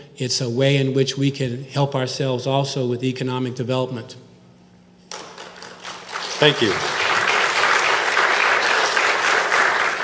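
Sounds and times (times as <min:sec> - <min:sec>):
hall echo: 0:05.1 - 0:10.0
audience applause: 0:05.5 - 0:10.0.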